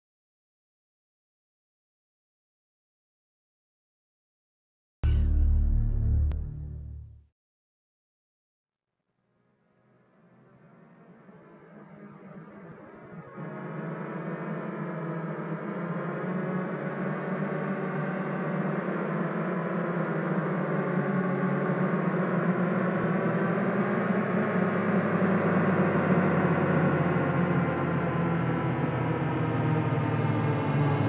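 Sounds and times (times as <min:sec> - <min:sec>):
deep cinematic drone: 0:05.0 - 0:07.2.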